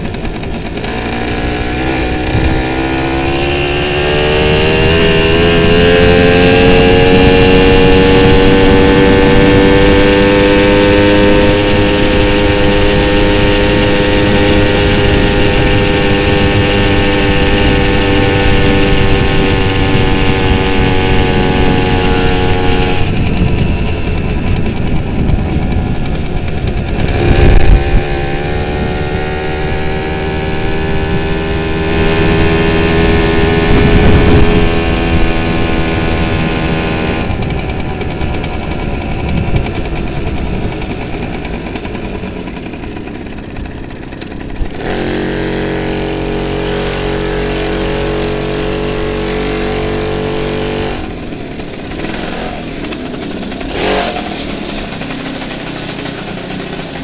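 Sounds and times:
wind rumble on microphone: 0:00.0 - 0:42.7
moped engine: 0:00.0 - 0:57.0.

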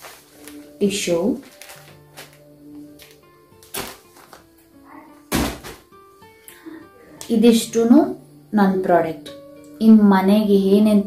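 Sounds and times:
tissue pack thumps: 0:00.0 - 0:04.7, 0:05.3 - 0:05.9
soft background music: 0:00.0 - 0:11.0.

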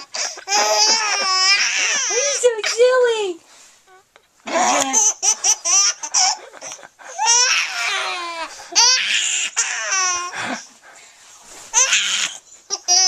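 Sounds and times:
baby laughing: 0:00.0 - 0:02.9, 0:04.4 - 0:10.6, 0:11.8 - 0:13.0.

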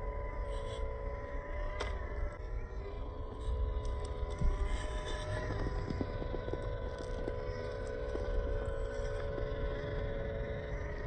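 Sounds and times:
electric motor and gearbox whining: 0:00.0 - 0:11.0
wind rumble on microphone: 0:00.0 - 0:11.0
light ticks of tyres on rock: 0:03.4 - 0:10.5.

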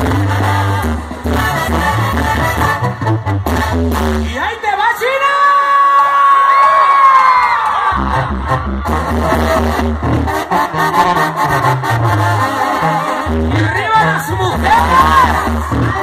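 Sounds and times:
sousaphone bass line: 0:00.0 - 0:04.4, 0:08.0 - 0:16.0
brass band playing: 0:00.0 - 0:04.6, 0:07.9 - 0:16.0.

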